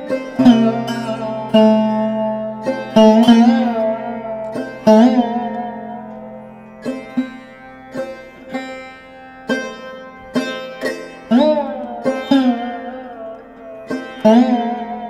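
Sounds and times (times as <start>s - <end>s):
plucked string instrument notes: 0.0s - 15.0s.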